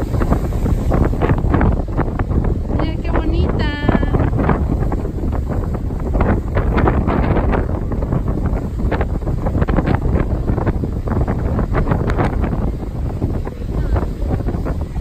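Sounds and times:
ocean surf breaking: 0:00.0 - 0:15.0
wind buffeting microphone: 0:00.0 - 0:15.0.

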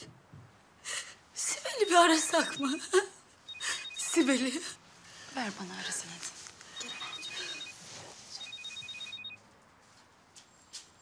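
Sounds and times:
phone ringing: 0:01.6 - 0:04.8, 0:06.7 - 0:09.4.

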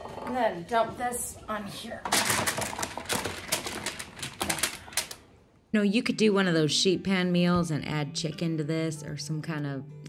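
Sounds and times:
vegetables clattering onto sheet pan: 0:02.0 - 0:05.2.

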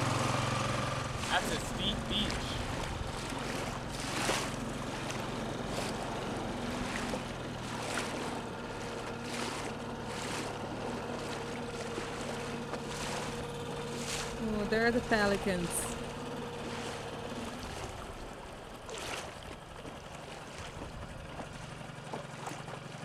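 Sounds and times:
outboard motor running: 0:00.0 - 0:23.0
water splashing along hull: 0:00.0 - 0:23.0.

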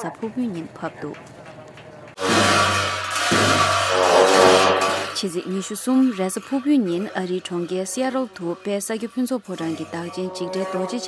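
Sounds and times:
cymbals crashing: 0:02.2 - 0:05.3
deep steady drone: 0:09.7 - 0:11.0.

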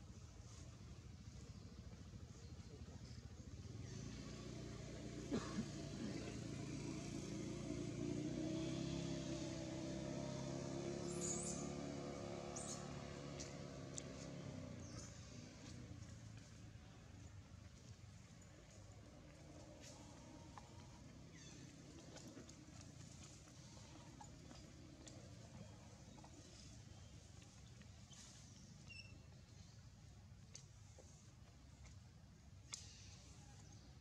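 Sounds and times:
vehicle engine droning: 0:01.2 - 0:29.7
faint short ticks: 0:32.6 - 0:33.3.

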